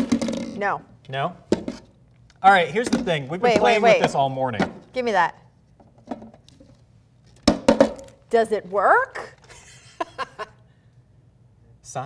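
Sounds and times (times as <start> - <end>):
hard object knocking on glass: 7.5 - 8.0.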